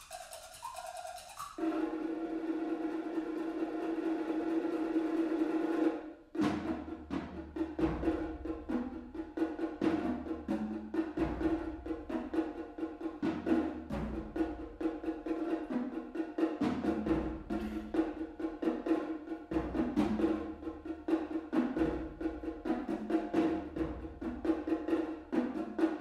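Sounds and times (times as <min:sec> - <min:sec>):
hand drum strikes: 0:03.5 - 0:26.0.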